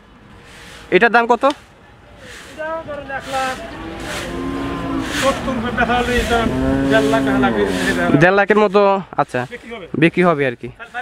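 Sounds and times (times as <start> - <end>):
men's voices chattering: 0.2 - 11.0
men calling out: 2.3 - 8.8.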